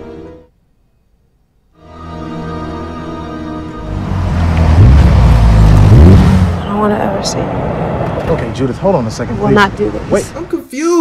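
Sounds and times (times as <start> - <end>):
car engine revving: 3.8 - 10.4.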